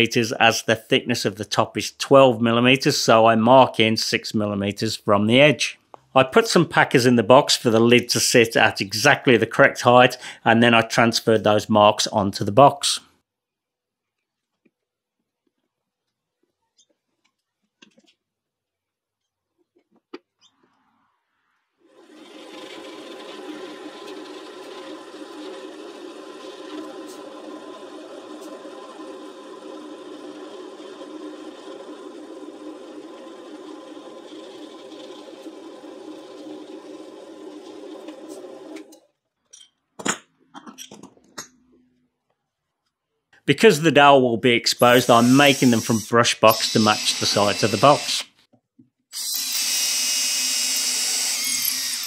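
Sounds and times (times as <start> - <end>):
drill press motor running: 21.8 - 39.0, 44.9 - 48.3, 49.2 - 52.0.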